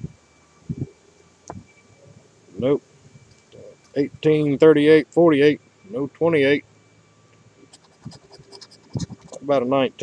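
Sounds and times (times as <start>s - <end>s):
coin scratching lottery ticket: 7.7s - 9.5s.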